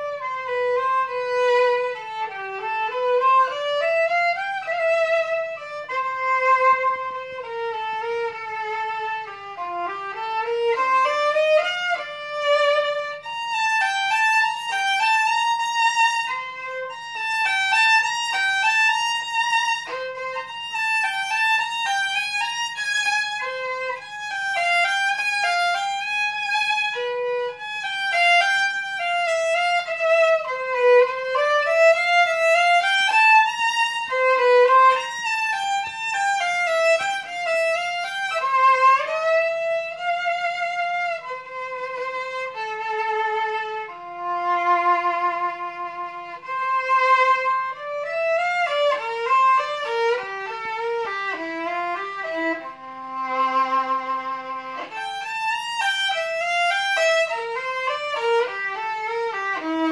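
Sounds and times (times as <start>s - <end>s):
violin melody: 0.0s - 59.9s.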